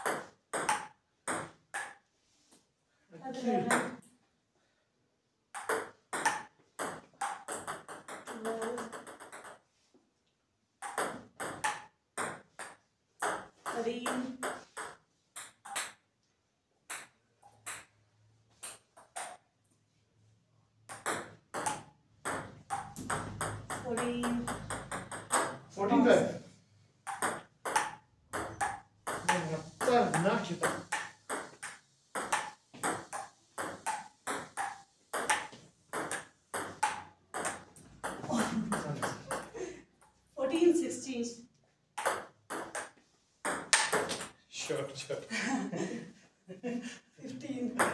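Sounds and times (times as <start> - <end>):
ping pong ball bouncing on table: 0.0 - 2.0, 3.6 - 4.1, 5.5 - 9.6, 10.8 - 16.1, 16.9 - 19.4, 20.9 - 25.7, 27.0 - 40.1, 42.0 - 44.4
ping pong ball hitting bats: 0.0 - 2.0, 3.5 - 4.1, 5.5 - 9.8, 10.8 - 16.1, 16.8 - 19.5, 20.8 - 25.7, 27.0 - 40.2, 41.9 - 44.4
table tennis ball clicking: 20.9 - 25.6, 27.0 - 29.4.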